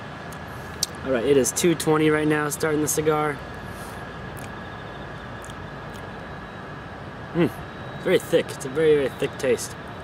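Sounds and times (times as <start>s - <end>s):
outdoor background noise: 0.0s - 10.0s
faint steady high tone: 1.0s - 10.0s
man humming mmm: 7.3s - 7.6s.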